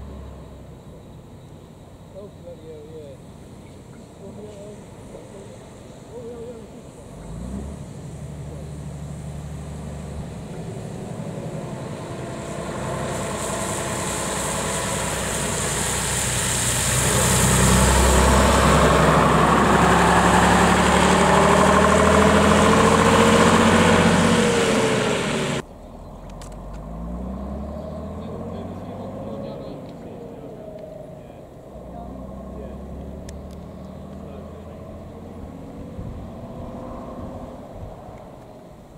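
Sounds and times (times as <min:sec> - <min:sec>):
bus diesel engine: 0:00.0 - 0:38.9
passing car traffic: 0:00.0 - 0:38.9.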